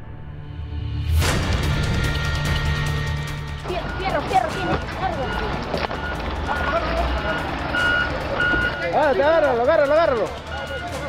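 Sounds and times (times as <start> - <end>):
music bed: 1.5 - 11.0
raised voices in street: 3.6 - 11.0
vehicle reversing alarm beeps: 3.6 - 11.0.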